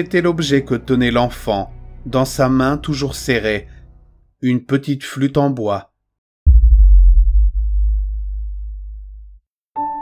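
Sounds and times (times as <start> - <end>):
deep bass boom: 6.5 - 9.4.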